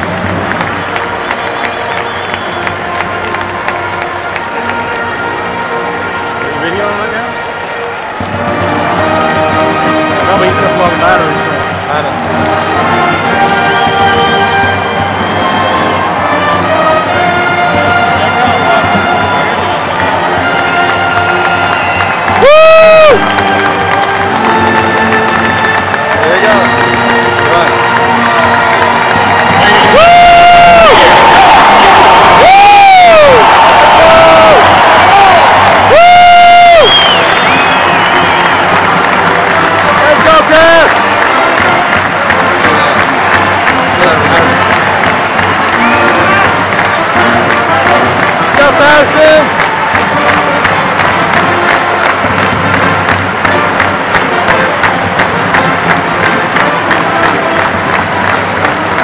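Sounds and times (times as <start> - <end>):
crowd cheering and clapping: 0.0 - 59.0
music playing: 0.0 - 59.0.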